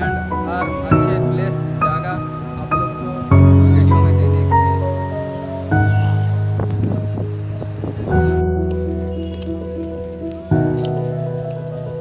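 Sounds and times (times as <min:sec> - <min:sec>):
held chords: 0:00.0 - 0:12.0.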